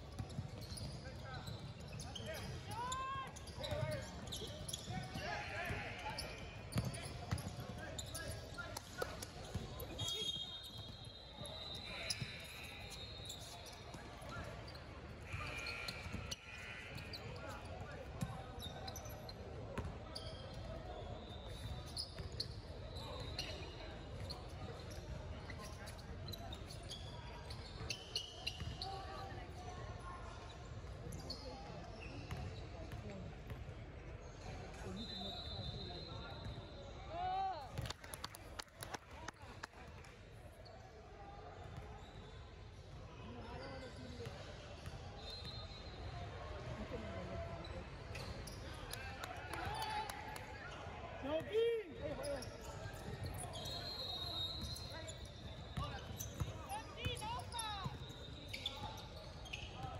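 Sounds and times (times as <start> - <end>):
voices echoing in gym: 0.0 - 37.8, 38.4 - 59.9
shoe squeaks: 0.1 - 8.6, 9.4 - 19.4, 20.1 - 29.1, 45.2 - 46.1, 52.1 - 59.9.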